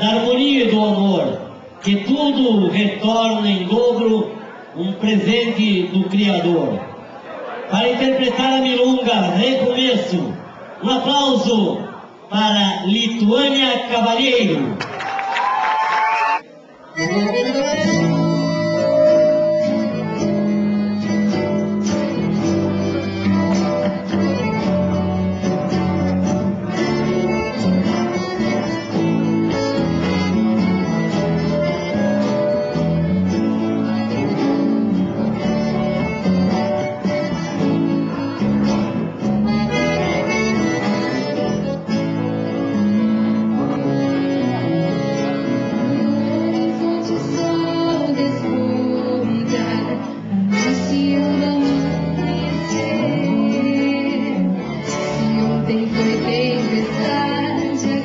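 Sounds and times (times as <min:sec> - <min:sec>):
accordion: 0:16.8 - 0:58.0
acoustic guitars picking: 0:17.0 - 0:58.0
bass: 0:17.0 - 0:58.0.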